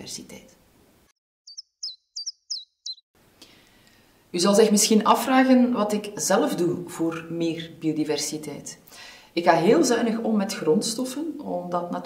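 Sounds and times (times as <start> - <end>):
high bird chirps: 1.4 - 3.1.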